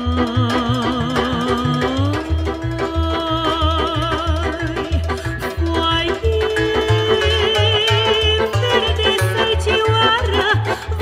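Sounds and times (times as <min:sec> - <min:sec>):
accordion: 0:00.0 - 0:11.0
hammered dulcimer: 0:00.0 - 0:11.0
plucked double bass: 0:00.0 - 0:11.0
violin: 0:00.0 - 0:11.0
woman singing: 0:00.0 - 0:11.0.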